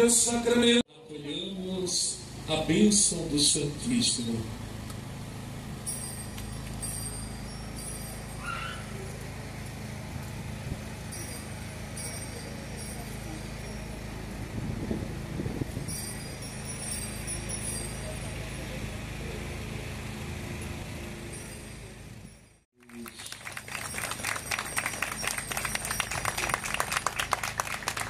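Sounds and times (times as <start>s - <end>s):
street noise: 0.0s - 28.0s
crowd clapping: 22.8s - 28.0s.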